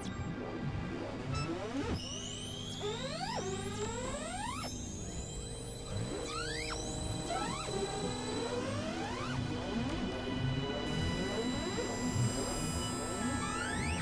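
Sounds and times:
sweeping electronic tones: 1.3 - 14.0.

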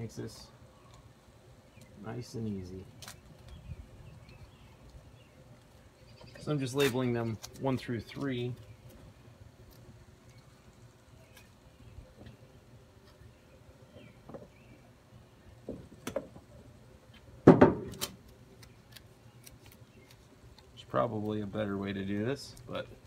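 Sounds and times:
clicks and handling noise: 17.9 - 21.4.

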